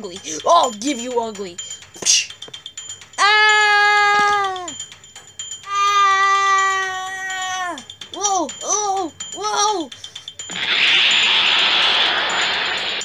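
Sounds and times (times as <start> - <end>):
person wailing long high notes: 3.2 - 4.8, 5.7 - 10.0.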